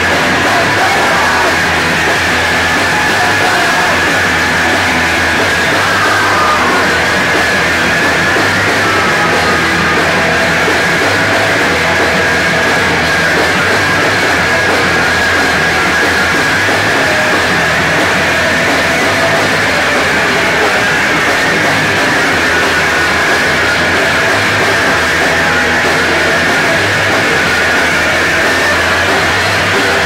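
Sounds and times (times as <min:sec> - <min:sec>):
punk rock band playing live: 0:00.0 - 0:30.0.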